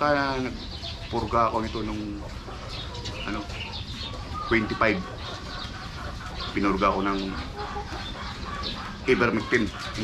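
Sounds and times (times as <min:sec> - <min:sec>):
chickens clucking: 0:00.0 - 0:10.0.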